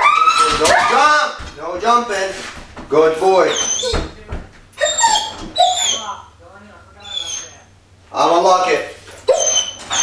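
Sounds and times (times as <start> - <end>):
dog whining: 3.4 - 4.2, 4.8 - 6.4, 7.0 - 7.7, 9.2 - 10.0.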